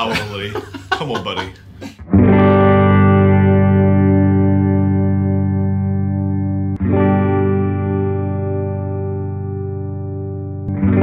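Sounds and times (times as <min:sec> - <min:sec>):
electric guitar chord ringing: 0:02.0 - 0:11.0.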